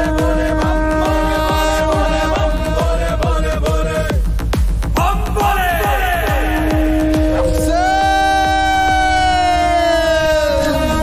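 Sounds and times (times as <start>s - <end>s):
low steady drone: 0.0s - 4.6s, 6.3s - 11.0s
high siren-like wail: 6.9s - 11.0s.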